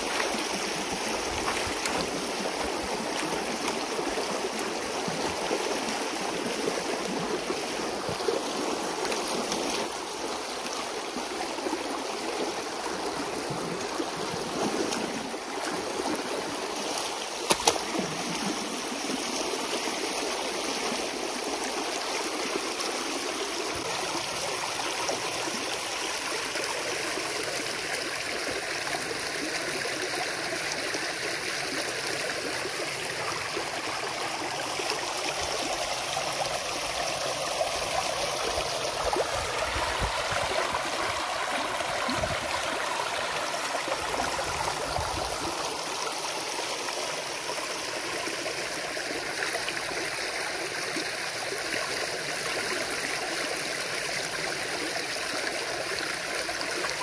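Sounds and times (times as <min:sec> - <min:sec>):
stream water rushing: 0:00.0 - 0:57.0.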